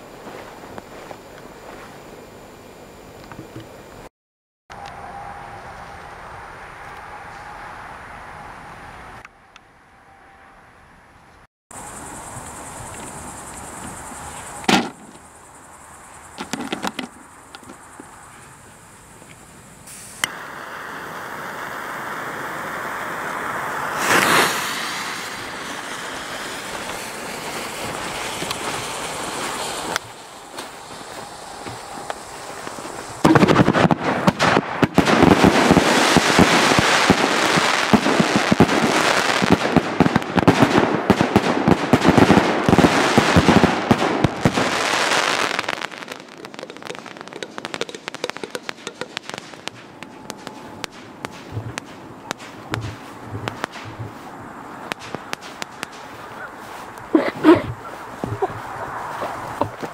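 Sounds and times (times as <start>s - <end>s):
firework battery firing: 11.8s - 18.0s, 19.8s - 56.2s
steady hiss: 11.8s - 59.9s.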